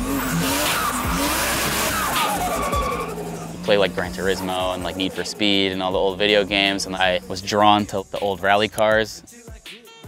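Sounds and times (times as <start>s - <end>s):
car engine revving hard: 0.0s - 8.2s
tyres squealing: 0.0s - 8.4s.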